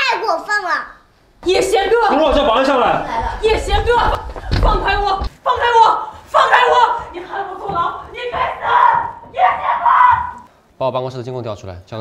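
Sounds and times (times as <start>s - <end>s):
woman shouting and screaming: 3.5s - 10.5s.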